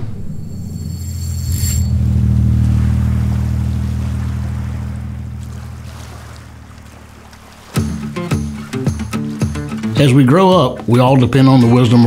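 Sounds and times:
high shimmer: 0.0 - 6.4
deep rumbling drone: 0.0 - 8.7.

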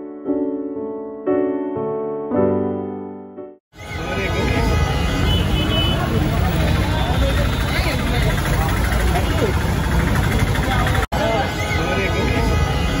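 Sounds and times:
traffic rumble: 3.8 - 13.0.

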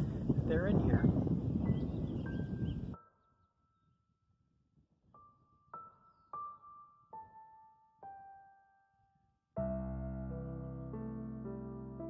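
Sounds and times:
wind rumble on microphone: 0.0 - 3.0.

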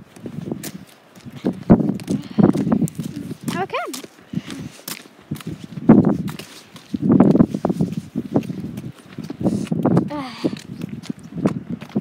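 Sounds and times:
footsteps on gravel: 0.0 - 12.0
voices: 3.5 - 4.0.

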